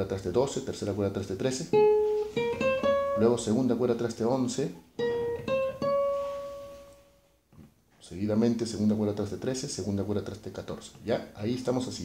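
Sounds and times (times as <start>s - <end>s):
plucked acoustic guitar note: 1.7s - 3.5s, 5.0s - 7.0s.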